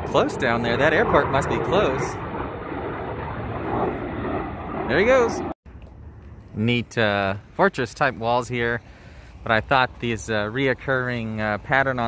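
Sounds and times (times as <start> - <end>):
military jet flying low overhead: 0.0 - 5.6.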